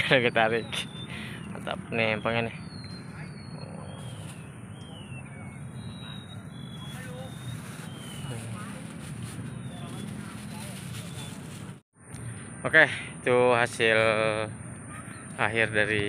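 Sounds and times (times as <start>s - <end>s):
distant voices: 0.0s - 16.0s.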